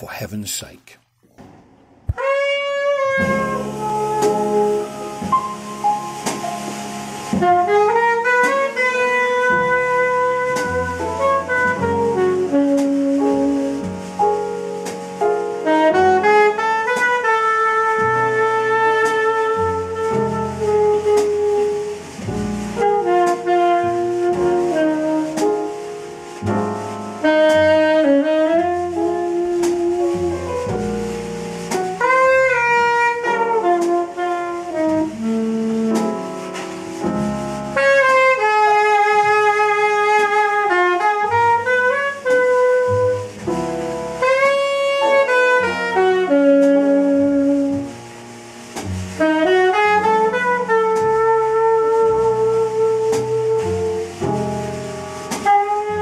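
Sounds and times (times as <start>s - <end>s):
double bass: 1.2s - 56.0s
drums: 1.3s - 56.0s
tenor saxophone jazz ballad: 2.1s - 56.0s.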